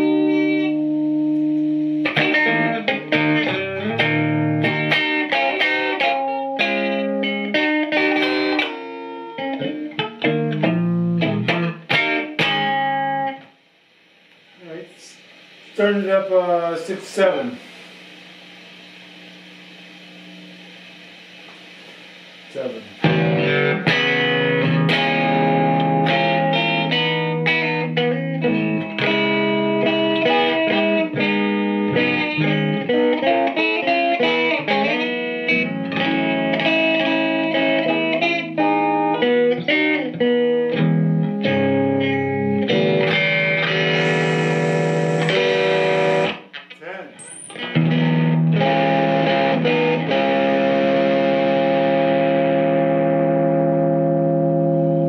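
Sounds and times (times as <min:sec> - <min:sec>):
electric guitar through tube amplifier: 0:00.0 - 0:13.6, 0:14.2 - 0:55.0.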